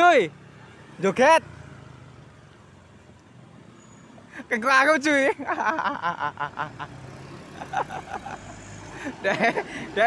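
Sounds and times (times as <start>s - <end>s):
road rumble: 0.0s - 10.0s
truck engine hum: 0.0s - 10.0s.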